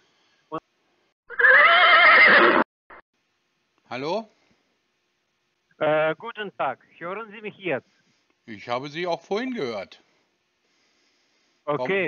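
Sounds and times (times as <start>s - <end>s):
horse whinnying: 1.3s - 2.6s.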